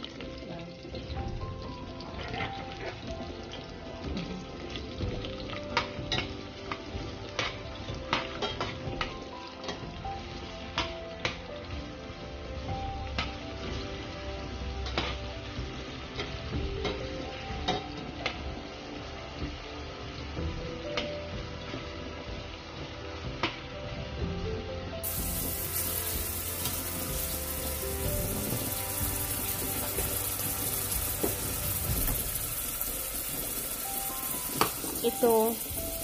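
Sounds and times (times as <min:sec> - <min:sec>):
onion and garlic sizzling in oil: 0:00.0 - 0:36.0.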